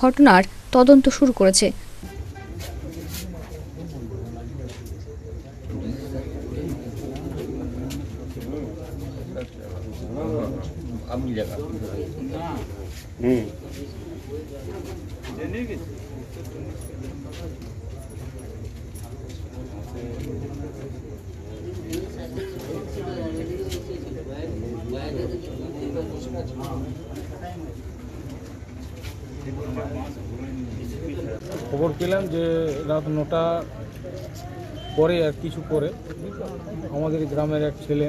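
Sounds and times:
people's voices: 0.0 - 38.0.

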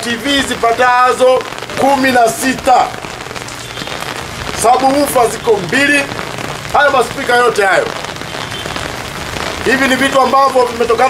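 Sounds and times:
man speaking: 0.0 - 3.0, 4.6 - 6.1, 6.7 - 8.0, 9.6 - 11.0.

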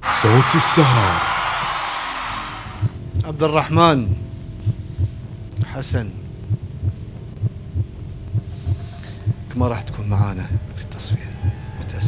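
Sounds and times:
heartbeat-style low thuds: 2.8 - 12.0.

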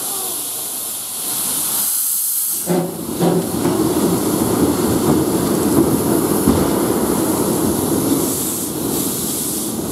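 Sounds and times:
steam locomotive hissing: 0.0 - 9.9.

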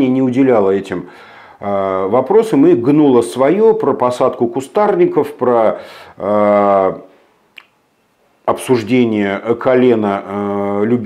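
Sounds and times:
mouth click: 7.5 - 7.8.

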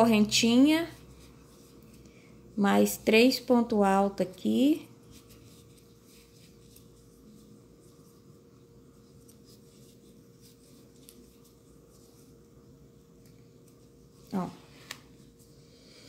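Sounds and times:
faint steady hum: 0.0 - 16.0
crochet hook scratching string: 4.8 - 12.6.

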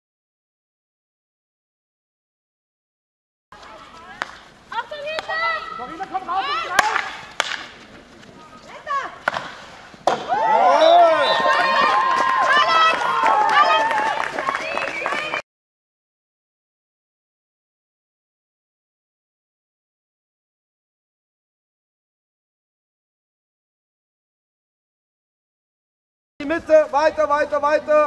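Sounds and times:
hockey sticks striking ball: 4.1 - 4.4, 5.0 - 5.4, 6.0 - 7.8, 9.2 - 10.4
girls shouting: 10.3 - 15.4.

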